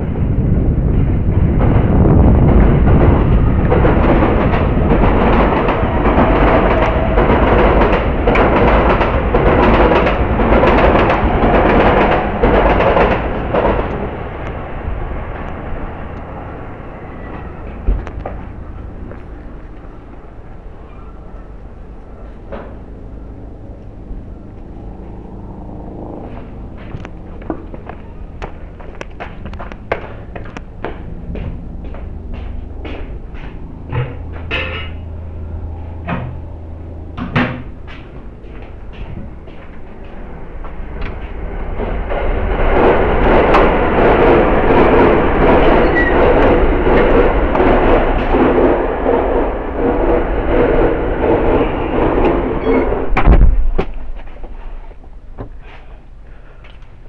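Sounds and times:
heavy thump: 53.1s - 54.1s.

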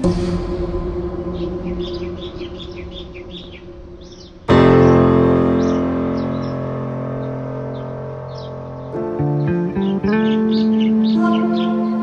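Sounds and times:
birds chirping: 0.0s - 12.0s
keyboard music: 4.5s - 12.0s
loud keyboard chord ringing: 4.5s - 12.0s.

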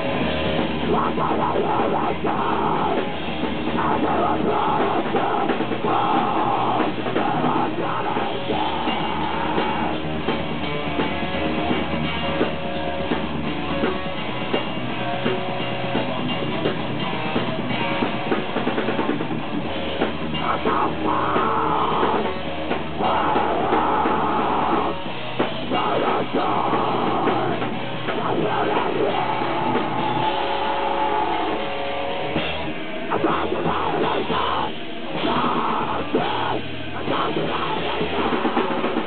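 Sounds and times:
distorted electric guitar: 0.0s - 39.0s
fast drumming: 0.0s - 39.0s.

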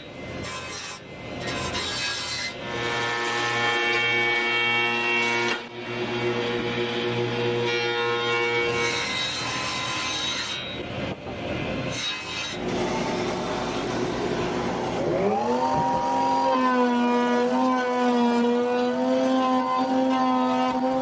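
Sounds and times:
jointer planing wood: 0.4s - 11.2s, 11.9s - 21.0s
belt sander: 12.4s - 21.0s
motor whine: 12.6s - 17.6s.

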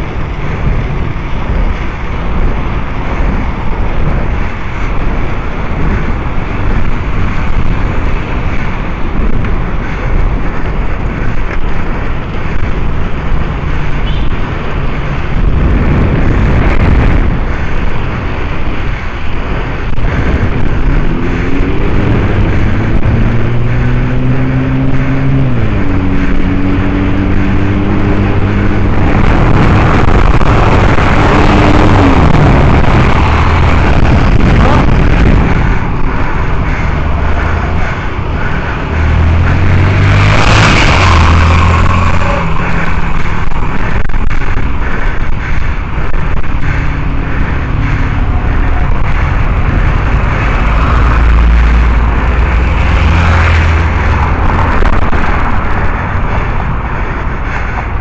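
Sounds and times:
passing cars rushing: 0.0s - 58.0s
vehicle engine humming: 0.0s - 58.0s.

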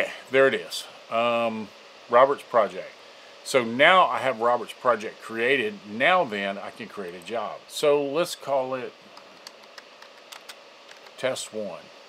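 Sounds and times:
faint keyboard key clicks: 9.2s - 11.2s.

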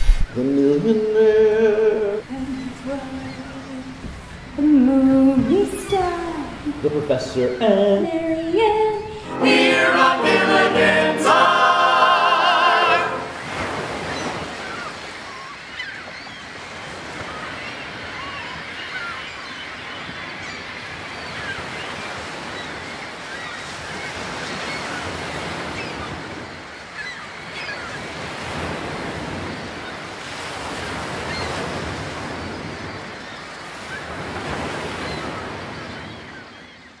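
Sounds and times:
ocean waves washing in: 0.0s - 15.8s.

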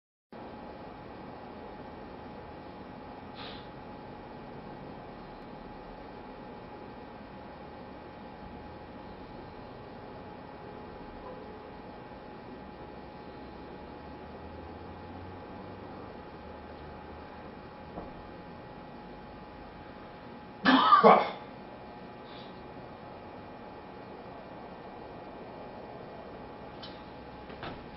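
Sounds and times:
faint hum tone: 0.4s - 27.9s.

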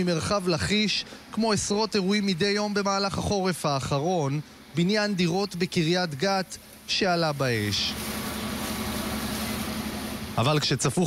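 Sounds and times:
heavy engine running: 0.0s - 11.0s
water spraying from fire hose: 0.0s - 11.0s.

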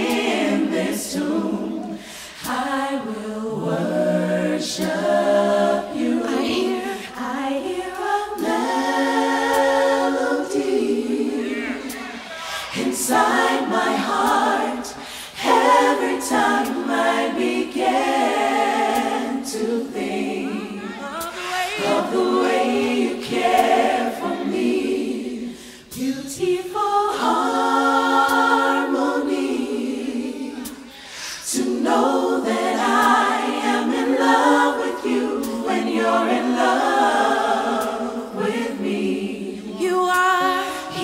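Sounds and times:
vocal group singing harmonies: 0.0s - 41.0s
singers breathing: 1.9s - 2.5s, 12.2s - 12.8s, 14.9s - 15.4s, 25.4s - 26.0s, 30.8s - 31.5s, 40.6s - 40.9s.

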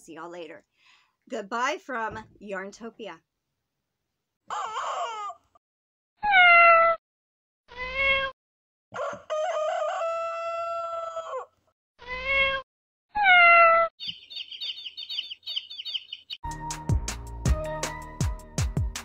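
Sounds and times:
rooster crowing: 9.0s - 11.5s
quick high chirps: 14.0s - 16.4s.

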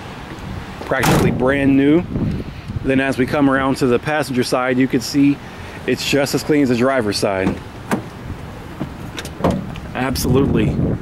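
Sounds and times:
truck door latch click: 1.0s - 1.4s, 7.4s - 8.2s, 9.2s - 9.8s.

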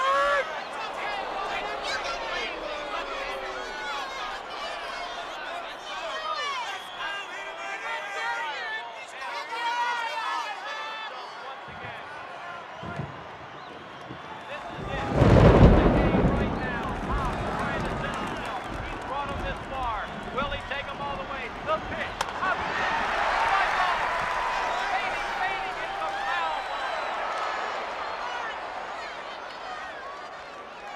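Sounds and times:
stadium crowd cheering: 0.0s - 30.9s
sharp crack: 15.2s - 24.5s.

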